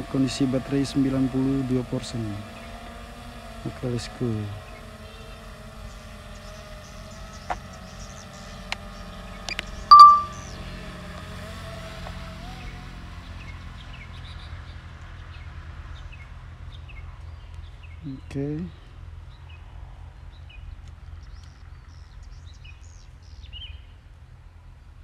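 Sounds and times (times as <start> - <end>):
drone propeller buzz: 0.0 - 12.9
bright ding: 9.9 - 10.4.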